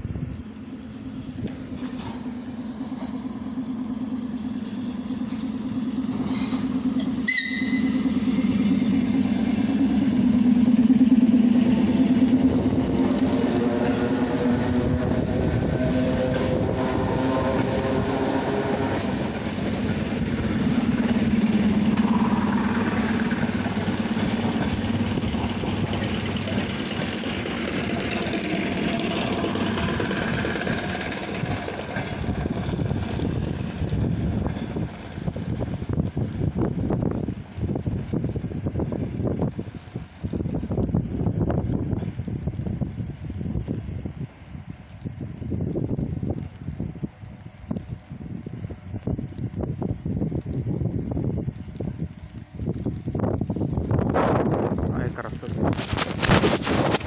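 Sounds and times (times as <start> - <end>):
electric train humming: 0.0 - 44.7
train running noise: 0.0 - 57.0
rising whine: 0.3 - 44.2.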